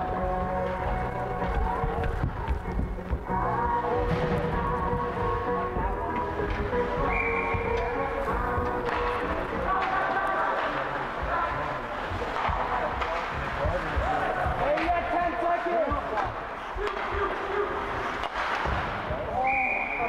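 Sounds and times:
sticks and puck knocking: 0:00.8 - 0:03.8, 0:07.6 - 0:10.8
high whistle: 0:07.0 - 0:07.8, 0:19.4 - 0:20.0.

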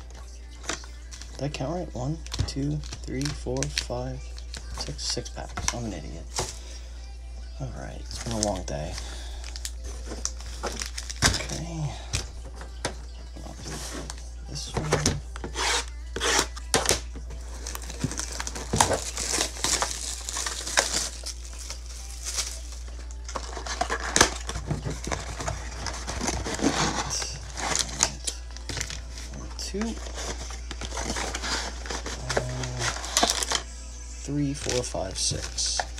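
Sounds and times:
foil packs crinkling: 0:00.0 - 0:06.8, 0:08.0 - 0:33.7, 0:34.4 - 0:35.9.

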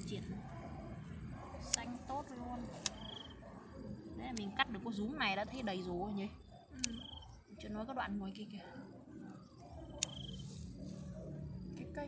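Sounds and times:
steady low hum: 0:00.0 - 0:12.0
scissors snipping stems: 0:01.6 - 0:03.2, 0:04.2 - 0:04.8, 0:06.8 - 0:07.3, 0:09.9 - 0:10.7.

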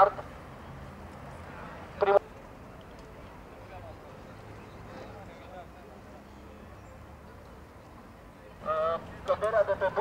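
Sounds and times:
faint outdoor background noise: 0:00.0 - 0:10.0
man speaking through megaphone: 0:02.0 - 0:02.2, 0:08.6 - 0:10.0.

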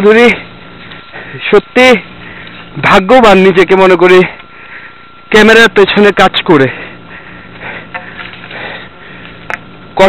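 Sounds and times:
steady hiss: 0:00.0 - 0:10.0
person breathing while walking: 0:00.9 - 0:01.5, 0:02.1 - 0:02.7, 0:04.3 - 0:05.2, 0:06.7 - 0:09.5.

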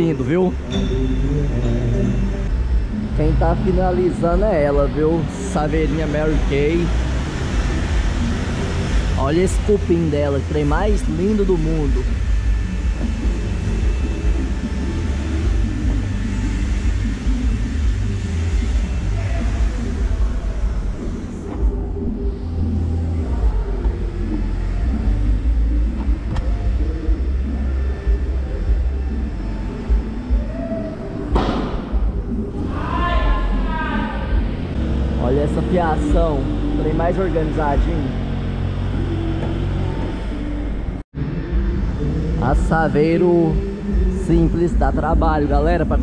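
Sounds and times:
steady low rumble: 0:00.0 - 0:46.0
faint voices: 0:19.0 - 0:31.3.

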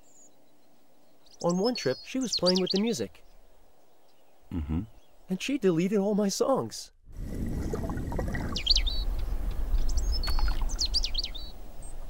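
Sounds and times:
small birds chirping: 0:00.0 - 0:06.9, 0:08.2 - 0:12.0.

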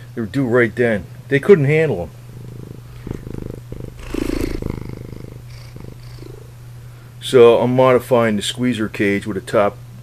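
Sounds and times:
cat purring: 0:01.6 - 0:06.6.

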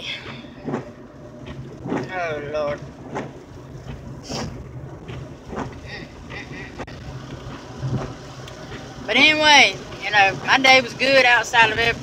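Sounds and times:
car engine and road hum: 0:00.0 - 0:12.0
hiss of wet tyres and rain: 0:05.7 - 0:12.0.

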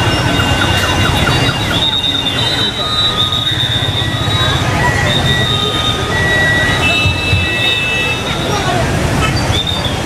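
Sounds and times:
high-pitched whistling tones: 0:00.0 - 0:10.0.

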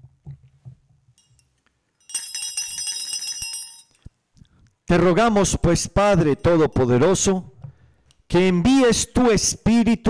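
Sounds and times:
small bells ringing: 0:01.2 - 0:04.1.

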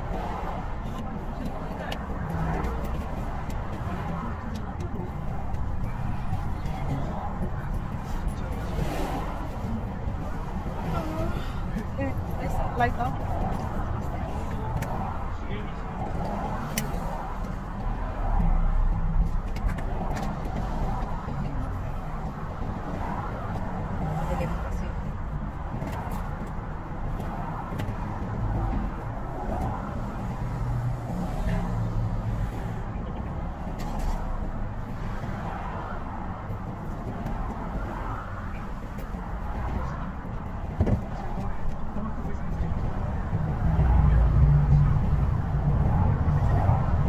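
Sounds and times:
car engine rumble: 0:00.0 - 0:47.0
road noise: 0:00.0 - 0:47.0.

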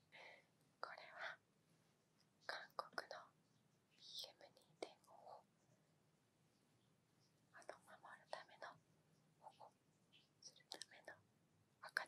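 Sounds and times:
woman whispering: 0:00.0 - 0:01.4, 0:02.4 - 0:03.3, 0:04.0 - 0:05.4, 0:07.6 - 0:08.8, 0:09.4 - 0:09.8, 0:10.4 - 0:11.2, 0:11.8 - 0:12.0.

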